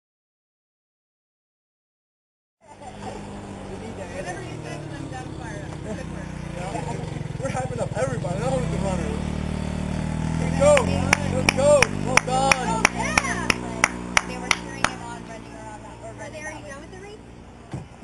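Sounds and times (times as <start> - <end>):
motor scooter engine passing: 2.6 - 18.0
voices calling out: 2.7 - 18.0
rhythmic clapping: 10.6 - 15.0.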